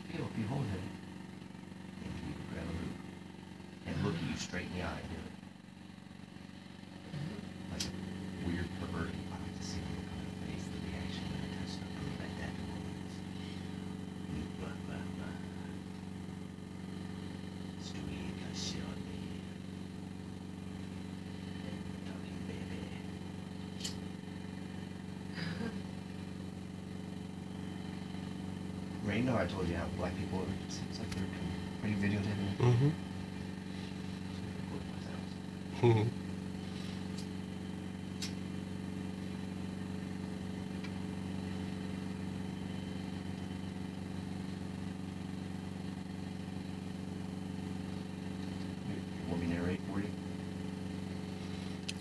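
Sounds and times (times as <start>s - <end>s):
small engine idling: 0.0s - 52.0s.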